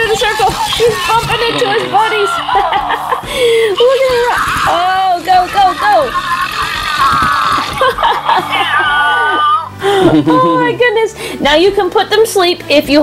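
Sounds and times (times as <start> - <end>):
toy speakers playing cartoon grumbling: 0.0 - 9.7.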